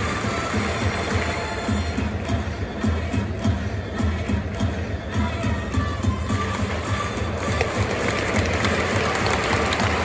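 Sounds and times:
big crowd noise: 0:00.0 - 0:10.0
stadium cheering music: 0:00.0 - 0:10.0.

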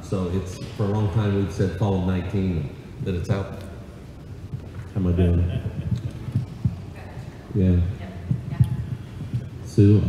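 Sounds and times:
soft dull low thumps: 0:02.8 - 0:10.0.

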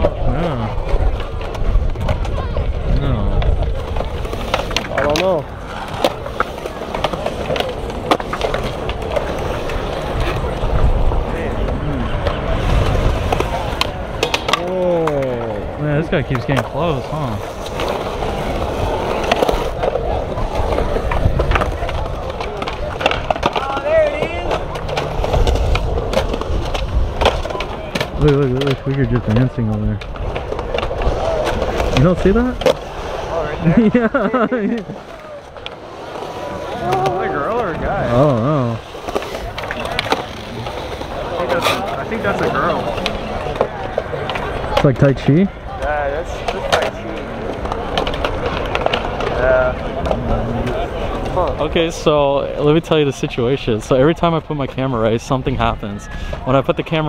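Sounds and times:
skateboard clacks: 0:00.0 - 0:57.0
skateboard wheels rolling on concrete: 0:00.0 - 0:57.0.

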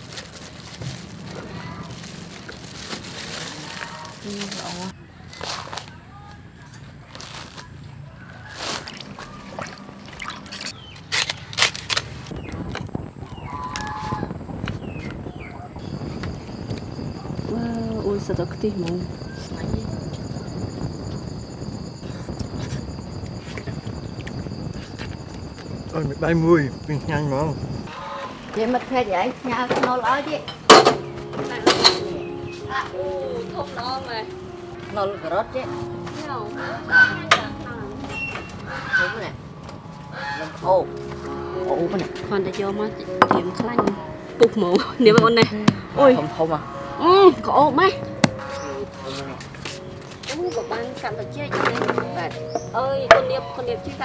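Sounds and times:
insect chirping: 0:12.3 - 0:54.0.

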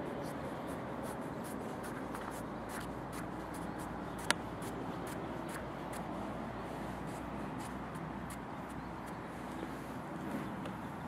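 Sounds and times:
brush stroking on paper: 0:00.0 - 0:08.8
background noise: 0:00.0 - 0:11.0.

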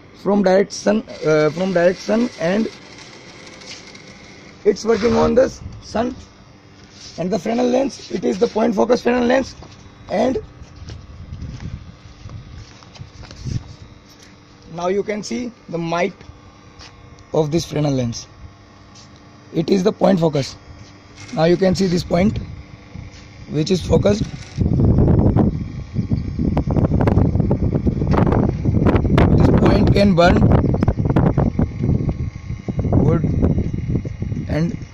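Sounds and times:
wind buffeting microphone: 0:10.8 - 0:13.7, 0:23.8 - 0:34.9.

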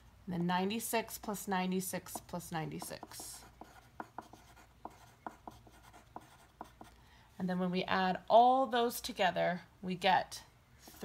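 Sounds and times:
pencil scratching on paper: 0:02.1 - 0:07.0.

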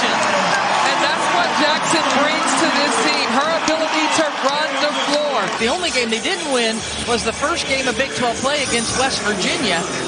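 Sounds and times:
arena crowd cheering and shouting: 0:00.0 - 0:10.0.

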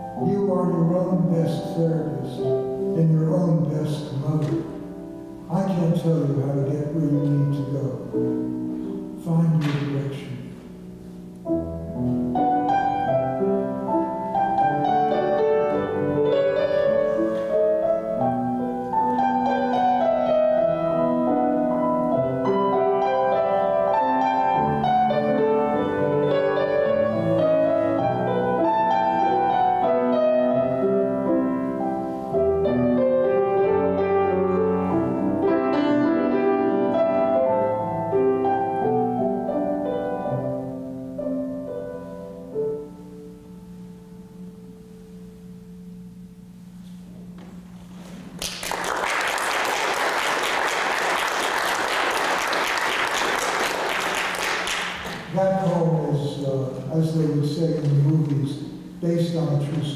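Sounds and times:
grand piano melody: 0:00.0 - 0:59.9.

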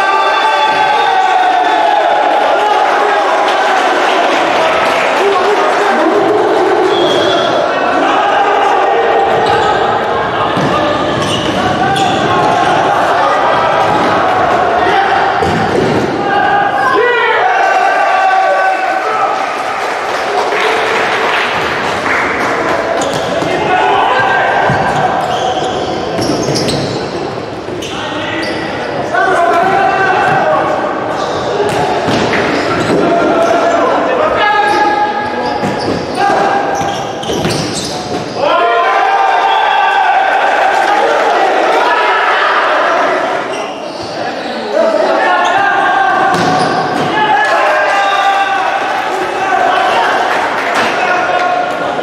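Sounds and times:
players shouting: 0:00.0 - 0:52.0.

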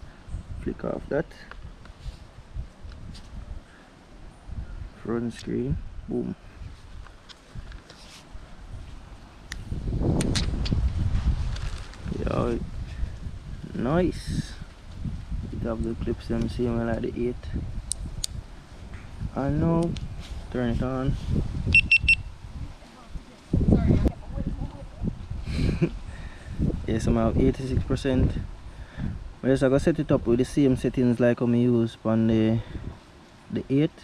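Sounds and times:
wind rumble on microphone: 0:00.0 - 0:31.3, 0:32.2 - 0:33.7
short high camera beeps: 0:21.7 - 0:22.3.

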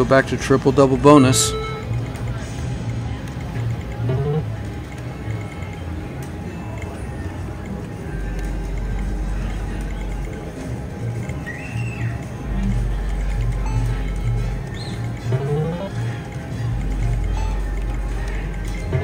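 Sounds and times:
background music: 0:00.0 - 0:19.0
faint voices: 0:00.0 - 0:19.0.

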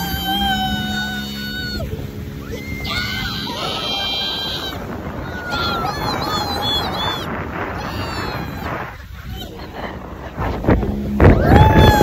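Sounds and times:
passenger shrieking: 0:00.0 - 0:09.4
wind buffeting microphone: 0:00.0 - 0:12.0
wind and spray rushing: 0:01.5 - 0:12.0.

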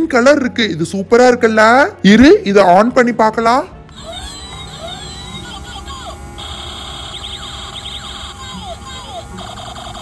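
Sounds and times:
toy siren-like alarm effect: 0:03.9 - 0:10.0.

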